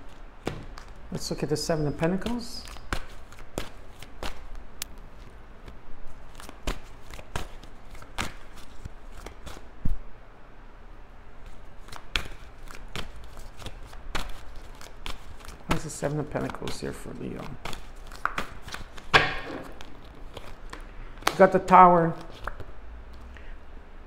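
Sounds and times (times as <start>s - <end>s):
cards being shuffled: 0.0s - 1.1s, 2.2s - 9.7s, 11.4s - 23.3s.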